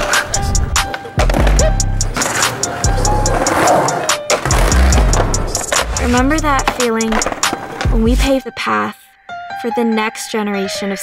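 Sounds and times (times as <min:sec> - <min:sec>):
music with deep bass beat: 0:00.0 - 0:06.7
skateboard rolling on concrete: 0:00.0 - 0:08.3
skateboard clacks and knocks: 0:00.1 - 0:08.0.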